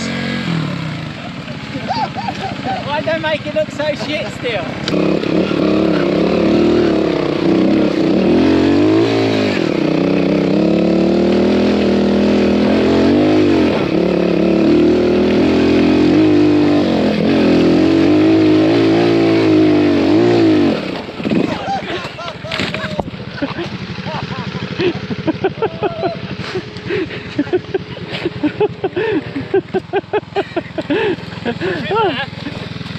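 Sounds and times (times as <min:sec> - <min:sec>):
motorcycle engine revving: 0:00.0 - 0:32.9.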